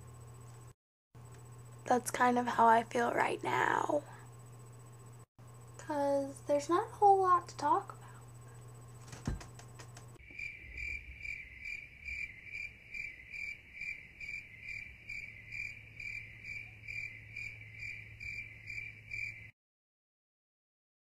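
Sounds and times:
crickets chirping: 1.2s - 19.5s.

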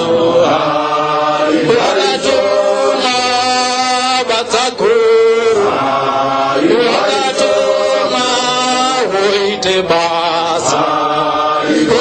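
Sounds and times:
voices chanting a hymn: 0.0s - 12.0s.

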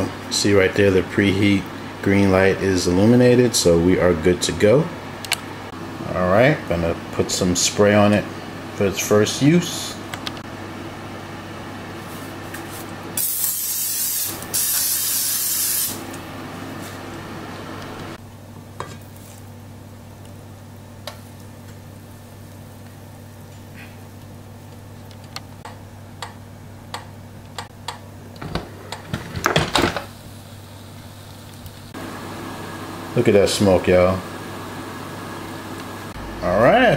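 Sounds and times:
aerosol spray hissing: 13.2s - 16.0s
steady low hum: 15.9s - 36.9s.

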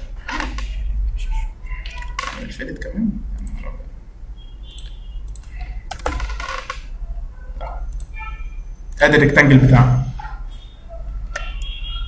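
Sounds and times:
computer keyboard typing: 1.7s - 3.7s, 4.7s - 6.9s, 7.6s - 8.3s.

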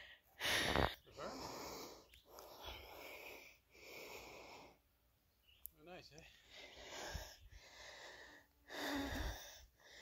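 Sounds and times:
heavy breathing: 0.0s - 4.9s, 6.4s - 10.0s.

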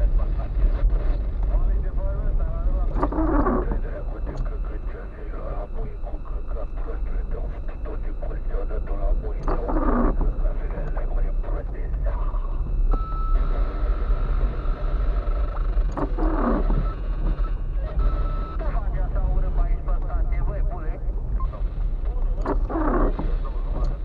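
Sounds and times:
indistinct voices: 0.0s - 12.8s, 13.4s - 24.0s
engine and road rumble: 0.0s - 24.0s.

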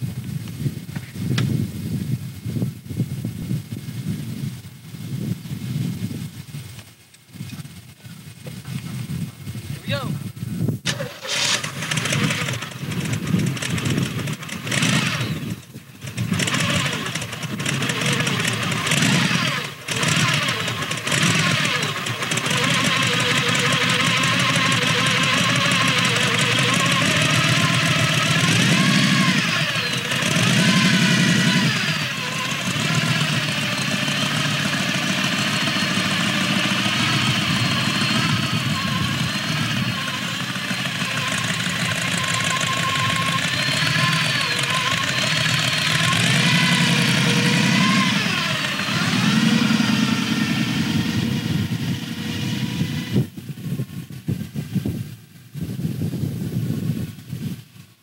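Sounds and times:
hot rod engine idling and revving: 10.8s - 54.8s.

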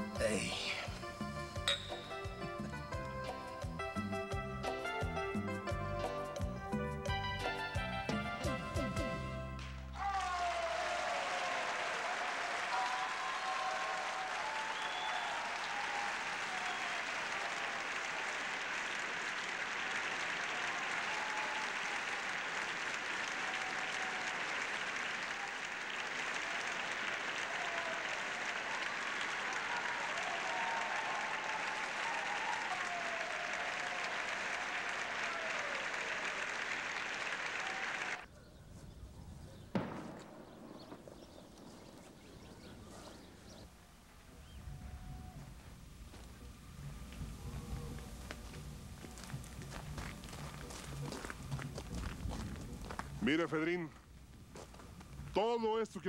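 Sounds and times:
audience applauding: 10.0s - 38.3s.

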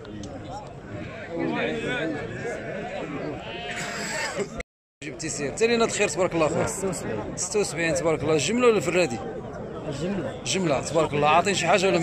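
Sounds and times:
men talking: 0.0s - 12.0s.

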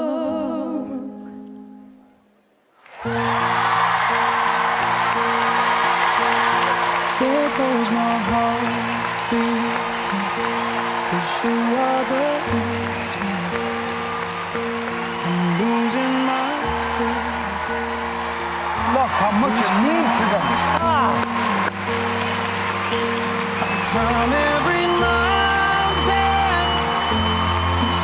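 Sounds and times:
audience applause and cheering: 2.8s - 28.0s.

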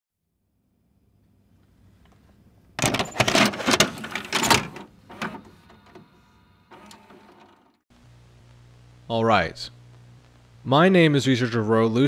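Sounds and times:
tape mechanism whirring: 3.4s - 7.8s.

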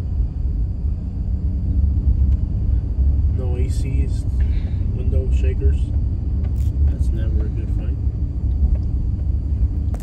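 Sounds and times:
road noise: 0.0s - 10.0s
truck engine rumble: 0.0s - 10.0s.

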